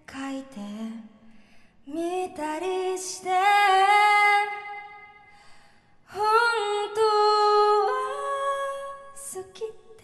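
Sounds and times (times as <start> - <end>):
woman singing into a microphone: 0.0 - 10.0.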